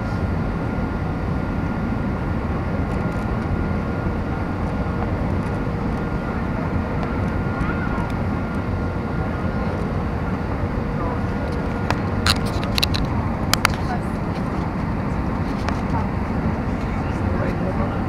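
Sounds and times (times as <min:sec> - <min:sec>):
aircraft cabin roar: 0:00.0 - 0:18.0
faint steady whine tones: 0:00.0 - 0:18.0.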